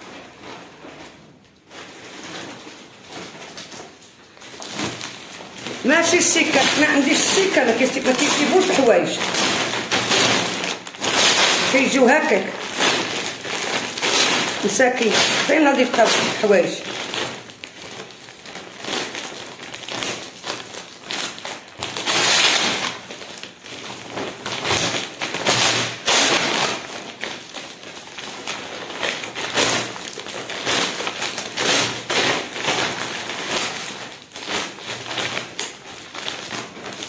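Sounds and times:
plastic bags rustling: 0.0 - 37.0.

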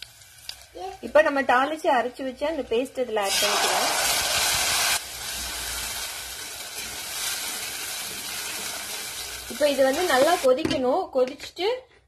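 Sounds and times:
paste sizzling in hot oil: 0.0 - 1.1, 2.6 - 10.5.

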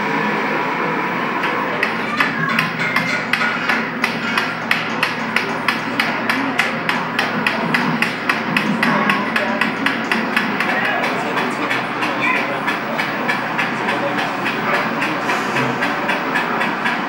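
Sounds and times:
murmur of voices: 0.0 - 17.0
rapid sharp clicking: 1.4 - 17.0.

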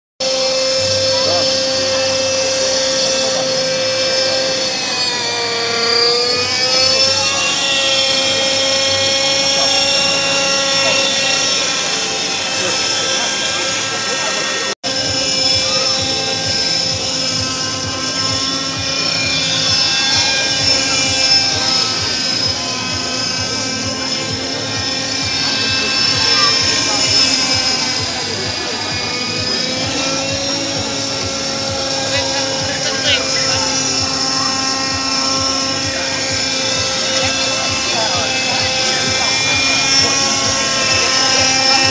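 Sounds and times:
crowd voices: 0.2 - 41.9
model helicopter high whine: 0.2 - 41.9.

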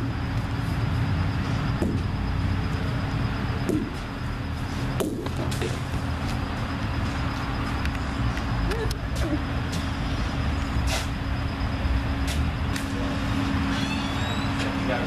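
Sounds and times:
low mechanical rumble: 0.0 - 15.0.

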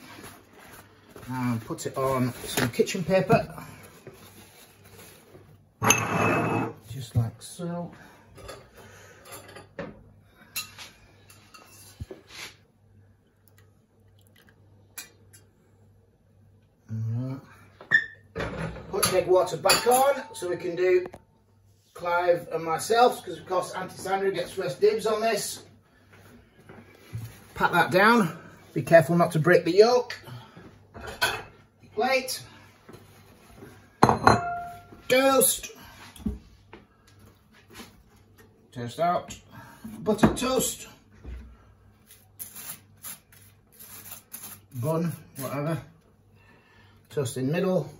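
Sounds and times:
plate clinking on worktop: 34.0 - 34.9
plate ringing: 34.0 - 34.9.

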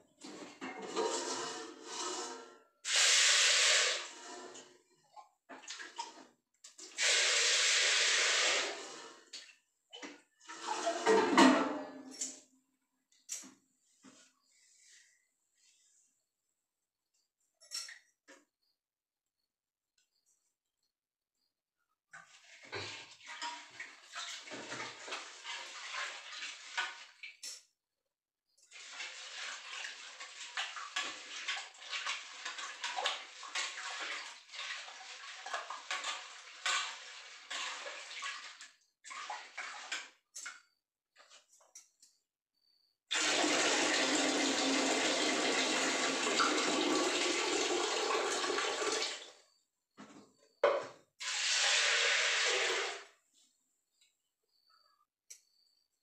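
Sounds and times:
tap water running into metal pot: 2.8 - 4.6, 5.5 - 9.0, 22.2 - 27.6, 28.6 - 40.6, 43.1 - 49.2, 51.2 - 53.1
water sloshing in metal pot: 9.0 - 12.4, 22.2 - 27.6, 28.6 - 41.3.

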